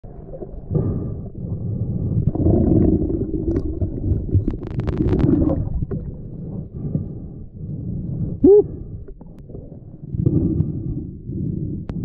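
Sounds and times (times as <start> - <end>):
muffled underwater rumble: 0.0 - 12.0.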